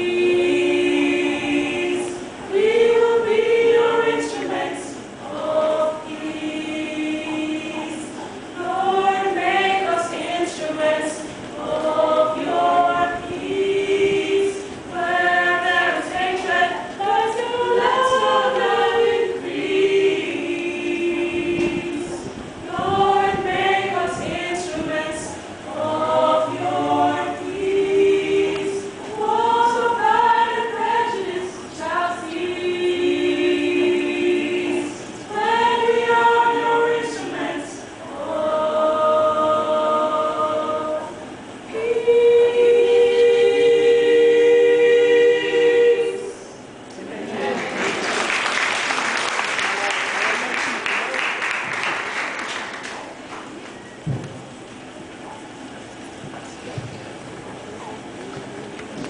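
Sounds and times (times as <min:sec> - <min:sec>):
women's choir singing a cappella: 0:00.0 - 0:50.6.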